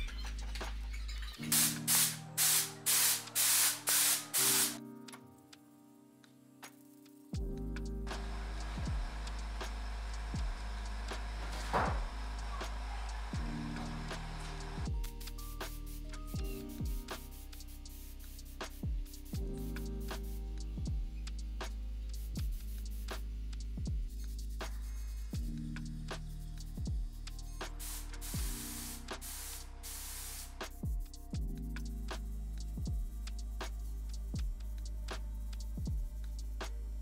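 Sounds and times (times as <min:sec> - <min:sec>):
spray gun hissing: 0:01.5 - 0:04.8, 0:27.8 - 0:30.6.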